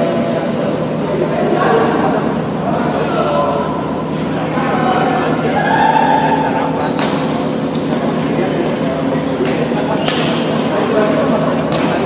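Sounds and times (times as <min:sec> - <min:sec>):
players' voices: 0:00.0 - 0:12.0
shoe squeaks on court: 0:06.8 - 0:08.9
racket hitting shuttlecock: 0:09.4 - 0:10.6, 0:11.7 - 0:12.0.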